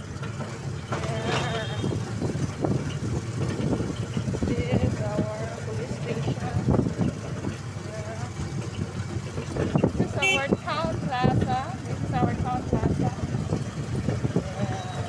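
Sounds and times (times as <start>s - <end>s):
motorcycle engine running: 0.0s - 15.0s
road noise: 0.0s - 15.0s
voices: 0.0s - 15.0s.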